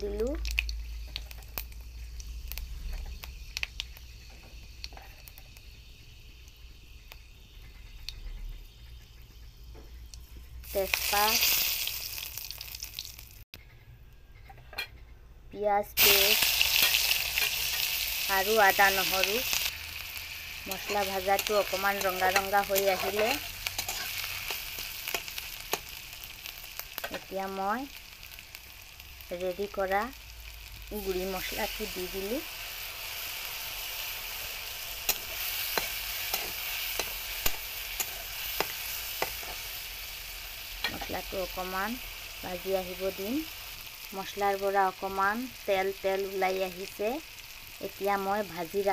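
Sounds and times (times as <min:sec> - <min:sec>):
spices sizzling in hot oil: 0:00.0 - 0:13.5, 0:15.6 - 0:48.9.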